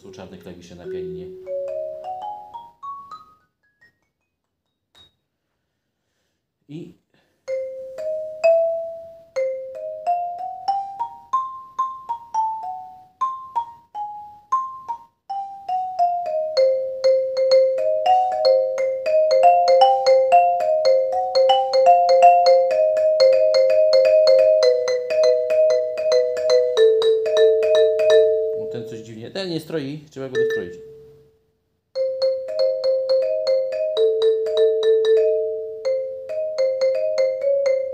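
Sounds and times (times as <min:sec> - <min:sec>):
xylophone notes: 0:00.8 - 0:04.3, 0:07.5 - 0:29.3, 0:30.3 - 0:31.4, 0:32.0 - 0:37.9.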